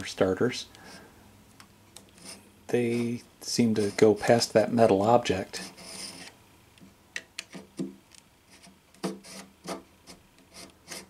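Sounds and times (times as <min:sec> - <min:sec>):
hand drill scraping wood: 0:02.2 - 0:04.5, 0:05.6 - 0:06.3, 0:08.5 - 0:11.0.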